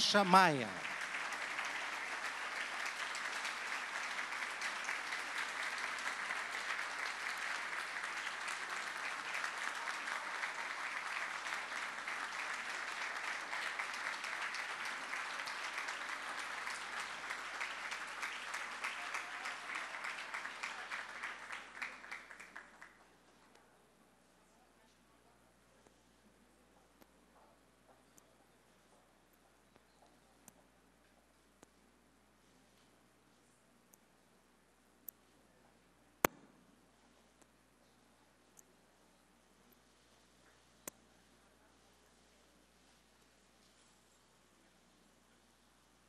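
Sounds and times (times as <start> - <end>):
audience applauding: 0.0 - 23.0.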